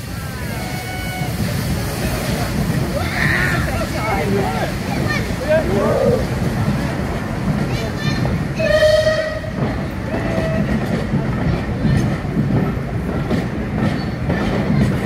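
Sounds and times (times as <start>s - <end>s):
train coaches rumbling on track: 0.0s - 15.0s
train whistle blast: 0.5s - 1.4s, 8.6s - 9.5s.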